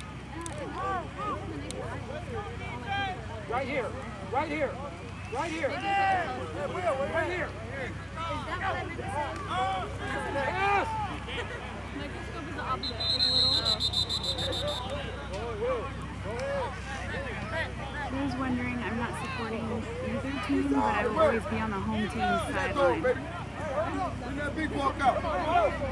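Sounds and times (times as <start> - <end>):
referee's whistle warbling: 12.7 - 15.2.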